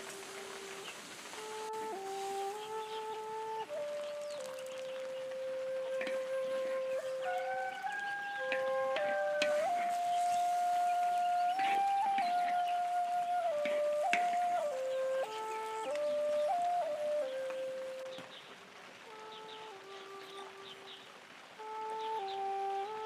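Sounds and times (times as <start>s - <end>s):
slow melody of held notes: 0.0s - 23.0s.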